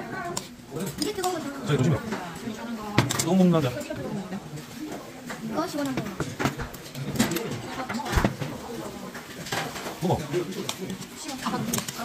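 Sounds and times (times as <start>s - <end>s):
metal bowls and utensils clinking: 0.0s - 12.0s.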